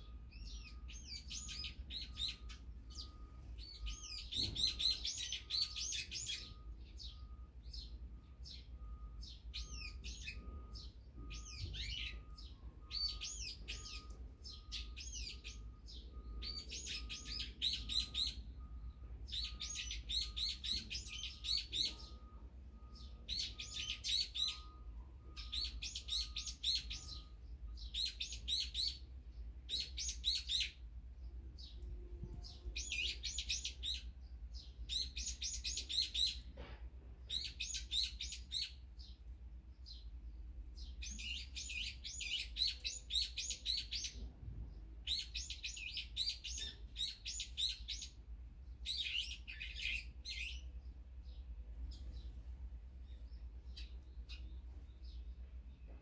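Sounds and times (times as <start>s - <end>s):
songbirds chirping: 0.0s - 56.0s.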